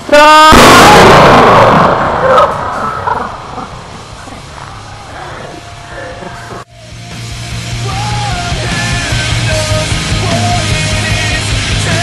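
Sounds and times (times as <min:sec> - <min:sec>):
low drawn-out growling: 0:01.6 - 0:06.7
rock music: 0:06.7 - 0:12.0.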